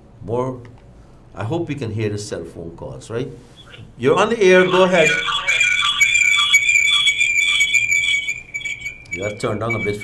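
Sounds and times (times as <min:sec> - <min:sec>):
high-pitched feedback squeal: 0:04.4 - 0:10.0.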